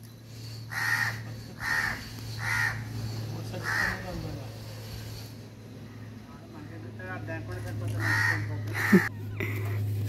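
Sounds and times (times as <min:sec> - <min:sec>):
steady low hum: 0:00.0 - 0:10.0
crow cawing: 0:00.7 - 0:04.1, 0:07.9 - 0:09.1.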